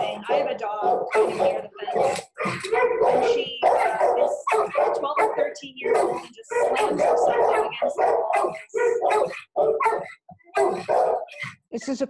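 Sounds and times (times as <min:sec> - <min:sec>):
dog barking: 0:00.0 - 0:11.6.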